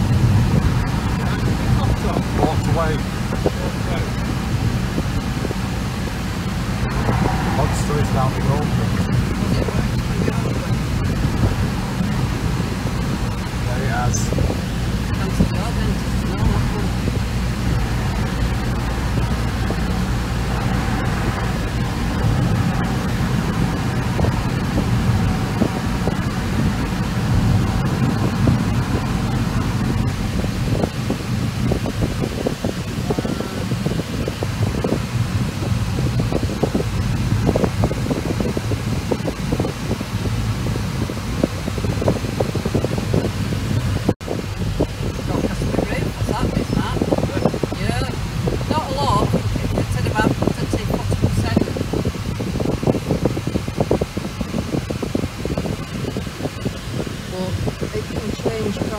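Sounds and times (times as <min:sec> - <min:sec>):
car interior driving drone: 0:00.0 - 0:58.9
road and ventilation hiss: 0:00.0 - 0:58.9.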